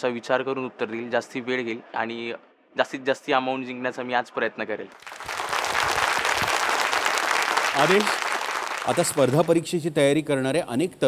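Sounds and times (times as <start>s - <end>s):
studio audience applauding: 5.0s - 9.8s.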